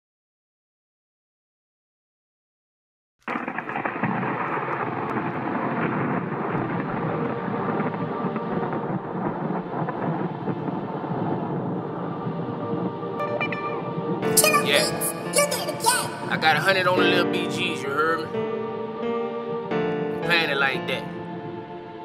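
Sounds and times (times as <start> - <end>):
thunder rumbling: 3.3 - 22.0.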